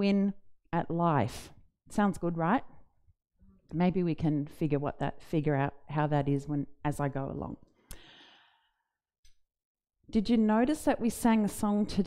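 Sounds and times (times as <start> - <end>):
soft breath out: 7.9 - 8.9.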